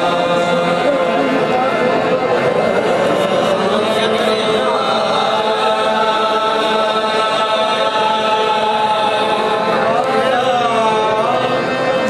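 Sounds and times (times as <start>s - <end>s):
male voices singing long notes: 0.0s - 12.0s.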